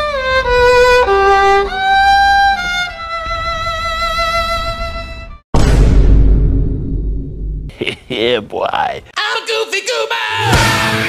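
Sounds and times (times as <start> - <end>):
solo violin mournful melody: 0.0 - 5.4.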